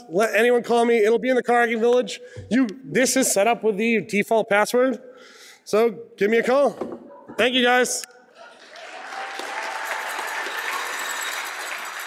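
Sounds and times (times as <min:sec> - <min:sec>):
audience applauding: 0:08.4 - 0:12.0.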